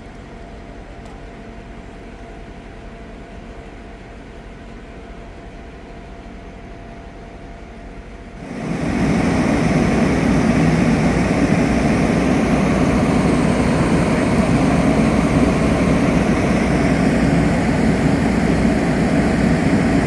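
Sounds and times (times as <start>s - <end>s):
heavy engine rumbling: 8.4s - 20.0s.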